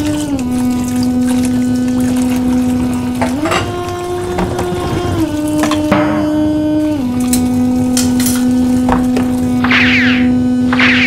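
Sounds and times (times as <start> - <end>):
low synthesizer drone: 0.0 - 11.0.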